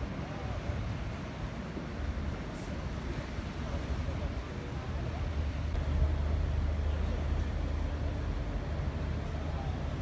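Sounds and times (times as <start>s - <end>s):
faint chatter of people: 0.0s - 10.0s
steady low city rumble: 0.0s - 10.0s.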